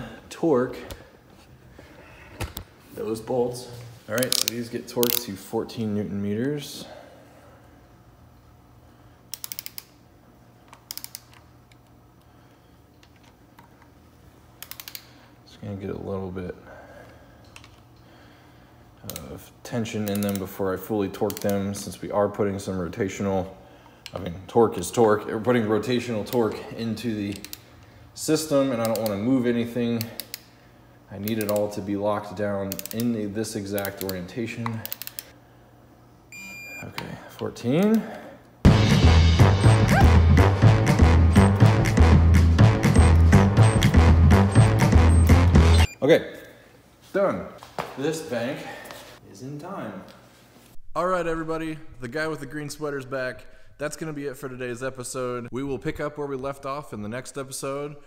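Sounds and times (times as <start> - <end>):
faint steady hum: 0.0 - 38.7
torque wrench ratchet clicking: 9.3 - 9.9
electronic beep: 36.4 - 36.9, 44.5 - 46.0.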